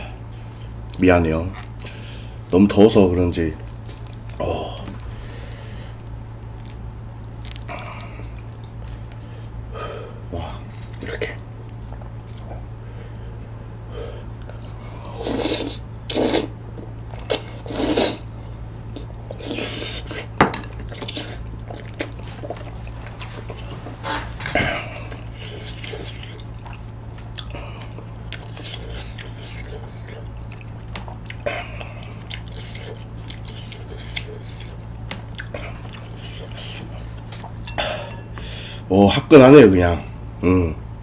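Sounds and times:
chewing: 3.6s - 5.2s, 6.6s - 9.3s, 18.7s - 38.4s
loud slurping: 15.1s - 16.6s, 17.3s - 18.3s.

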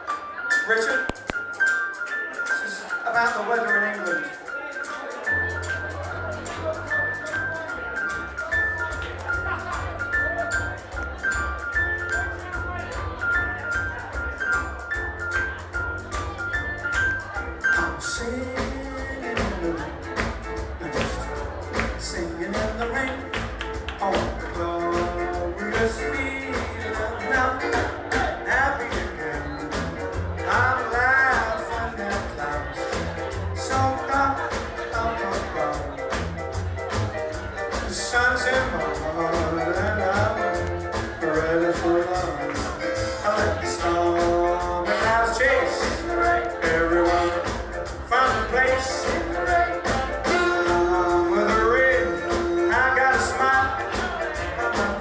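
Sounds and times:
drums: 0.0s - 55.0s
swing band playing: 0.0s - 55.0s
upright bass: 2.4s - 55.0s
man singing: 17.6s - 36.3s, 37.3s - 55.0s
person singing long notes: 43.3s - 55.0s.

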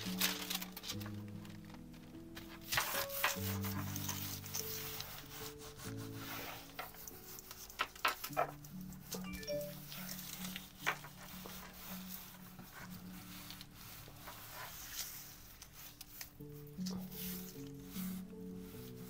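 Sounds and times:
hands rubbing wet tissue paper: 0.0s - 19.0s
soft background music: 0.0s - 19.0s.

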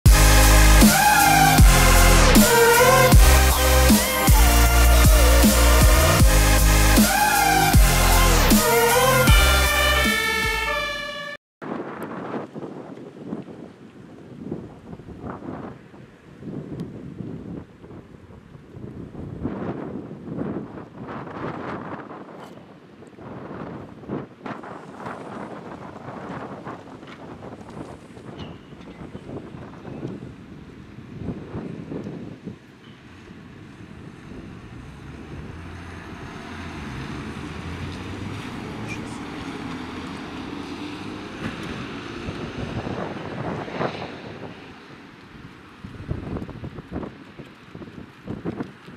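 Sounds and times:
street noise: 0.0s - 48.9s
wind on microphone: 11.6s - 48.9s
vehicle engine driving off: 33.6s - 44.5s.

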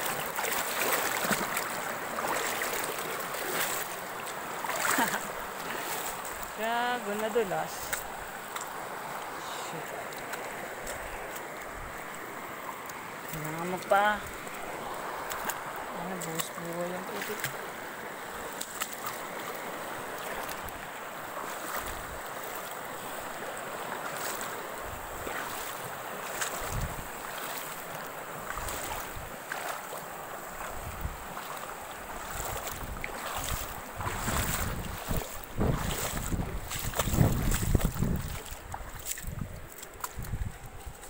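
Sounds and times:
river water flowing over rocks: 0.0s - 41.0s
wind buffeting on microphone: 26.6s - 27.2s, 30.6s - 31.4s, 32.1s - 41.0s.

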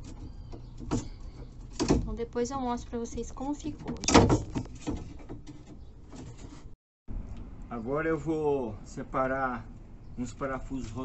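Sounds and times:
wooden board knocking and scraping: 3.7s - 6.7s.

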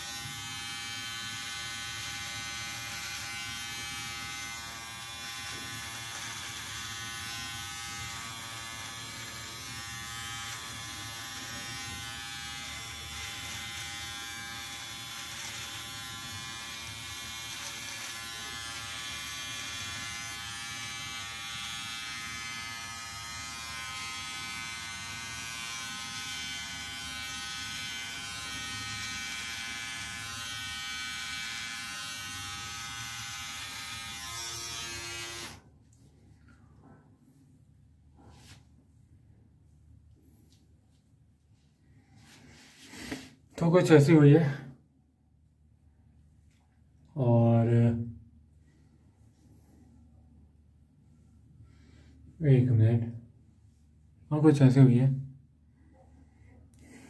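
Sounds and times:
electric beard trimmer buzzing: 0.0s - 35.6s.

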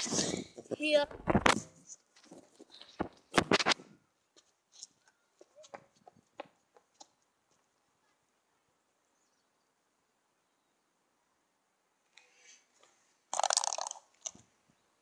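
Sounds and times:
camera handling rubs: 1.2s - 3.8s.

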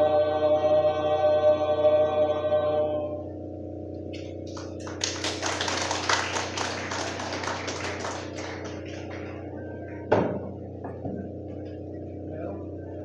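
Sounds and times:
congregation applauding: 4.5s - 9.4s.

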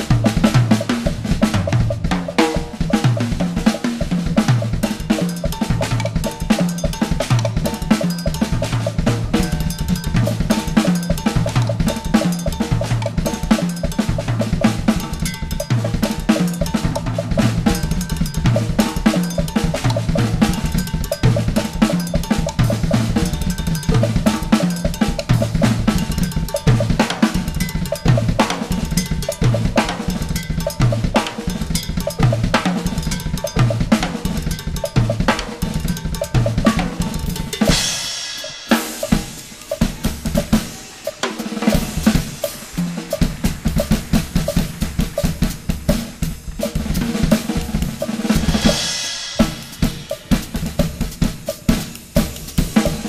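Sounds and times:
drum kit playing: 0.0s - 53.0s
cymbal crash: 36.6s - 52.0s.

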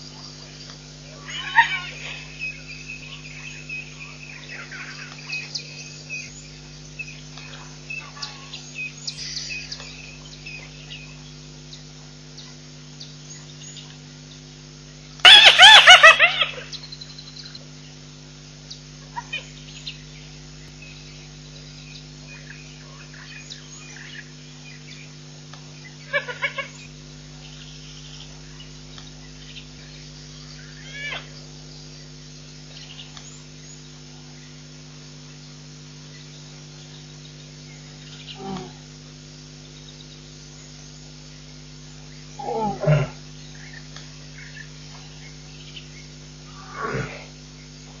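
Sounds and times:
insects: 0.0s - 48.0s
steady low hum: 0.0s - 48.0s
rapid repeated calls: 1.1s - 5.5s, 15.2s - 16.8s.

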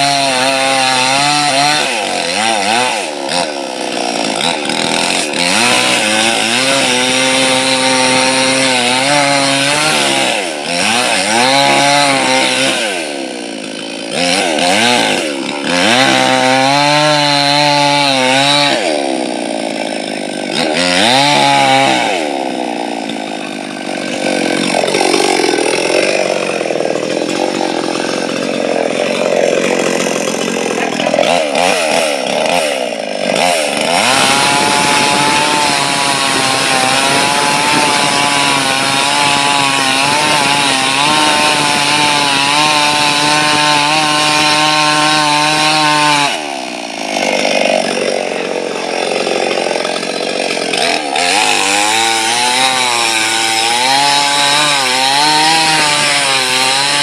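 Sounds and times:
chainsaw cutting wood: 0.0s - 57.0s.

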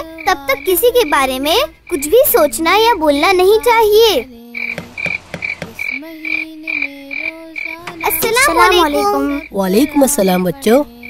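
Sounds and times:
frogs croaking: 0.0s - 11.0s.

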